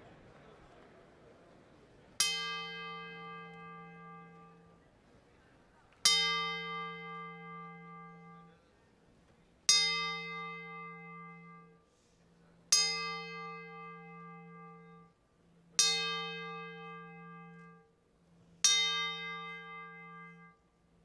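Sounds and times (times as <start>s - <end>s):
metal dome bell ringing: 12.7s - 20.8s.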